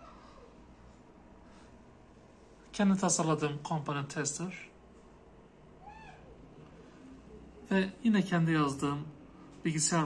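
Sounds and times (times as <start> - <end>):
faint animal-like call: 5.8 - 6.4.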